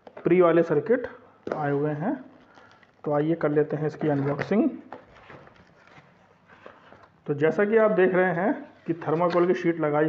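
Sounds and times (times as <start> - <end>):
plastic wrap and cardboard rustling: 1.5 - 7.7.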